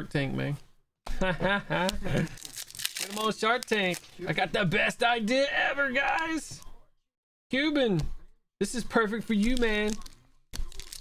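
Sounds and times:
man talking and laughing: 1.1 - 3.3
foil wrapper crinkling and tearing: 2.0 - 4.2, 9.4 - 11.0.

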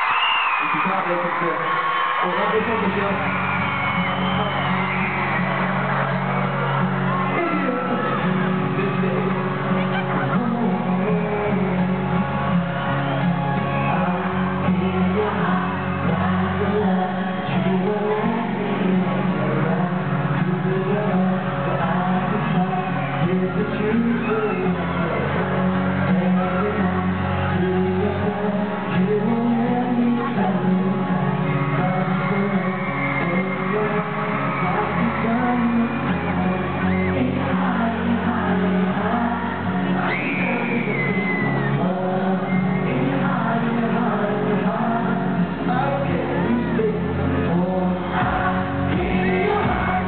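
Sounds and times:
live pop ballad over sound system: 0.0 - 50.0.

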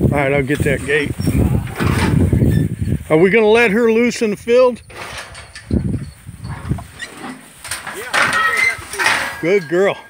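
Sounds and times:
metal gate rattling: 4.8 - 10.0.

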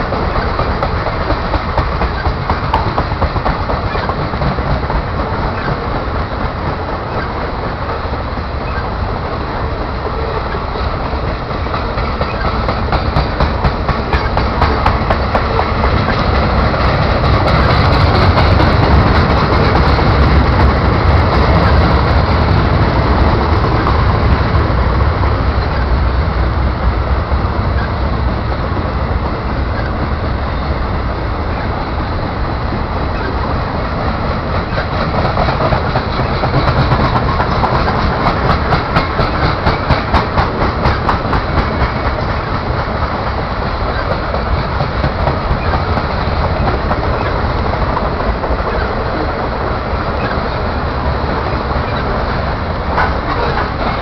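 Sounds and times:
clickety-clack over rail joints: 0.0 - 54.0
train wheels rumbling on rails: 0.0 - 54.0.

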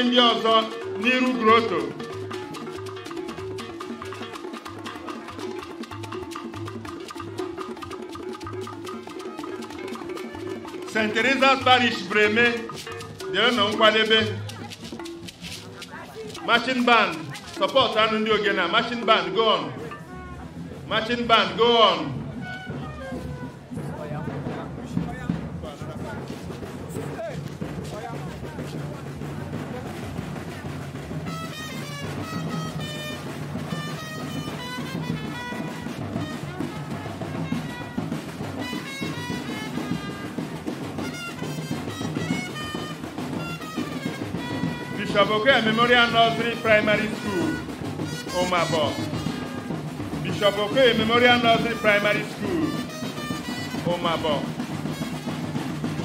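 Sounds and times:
live band music: 0.0 - 25.4, 26.0 - 56.0
voices in background: 0.0 - 55.7
drums and percussion beat: 0.0 - 56.0.

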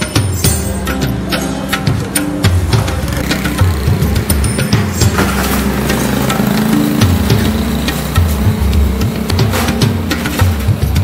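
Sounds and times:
background music with steady beat: 0.0 - 11.0
vehicle engine running: 2.7 - 11.0.

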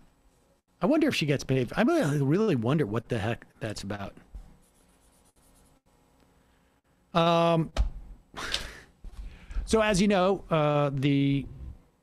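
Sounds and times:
man speaking: 0.8 - 4.2, 9.7 - 11.6.

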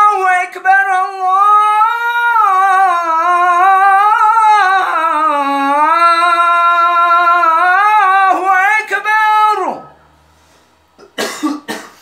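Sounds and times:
man coughing: 11.0 - 12.0.

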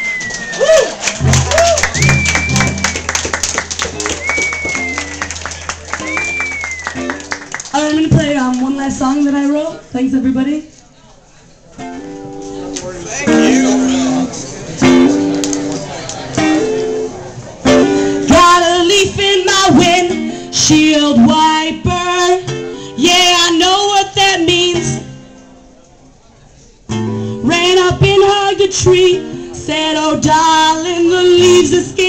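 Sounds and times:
acoustic guitar picking: 1.2 - 7.5, 11.8 - 25.6.

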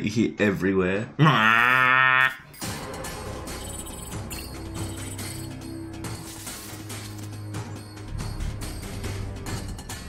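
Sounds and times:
quiet background music: 2.4 - 10.0.

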